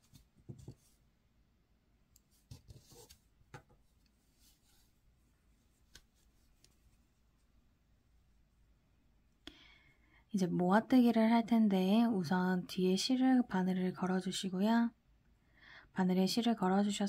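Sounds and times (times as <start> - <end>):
faint clicks and rubs of crochet hook: 5.8 - 7.0.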